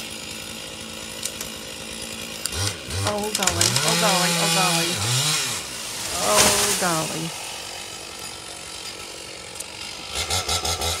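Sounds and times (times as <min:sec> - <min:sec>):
chainsaw idling and revving: 0:00.0 - 0:11.0.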